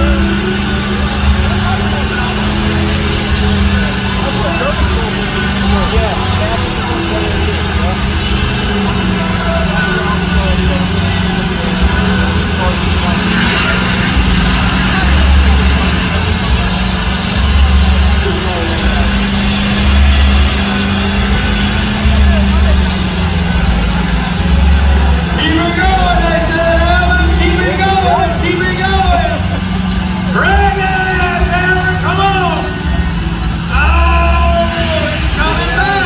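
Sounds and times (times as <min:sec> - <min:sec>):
people's voices: 0:00.0 - 0:36.0
truck engine idling: 0:00.0 - 0:36.0.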